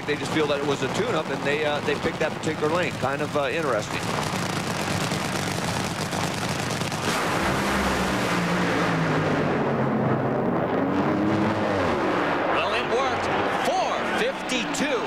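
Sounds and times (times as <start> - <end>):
dragster engines at full throttle: 0.0 - 15.0.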